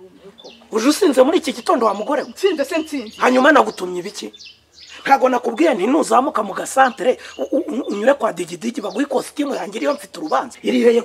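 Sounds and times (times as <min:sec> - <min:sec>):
man talking loudly: 0:00.7 - 0:04.4, 0:05.0 - 0:11.0.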